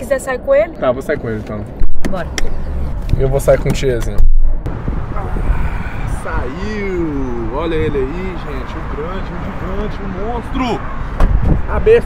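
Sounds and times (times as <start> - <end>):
traffic: 0.0 - 12.0
wind noise: 1.7 - 8.6, 10.8 - 12.0
muffled bump on microphone: 11.2 - 11.6.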